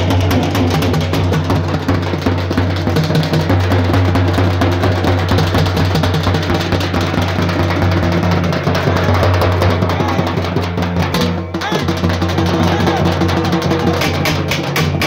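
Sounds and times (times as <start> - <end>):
fast dense drumming: 0.0 - 15.0.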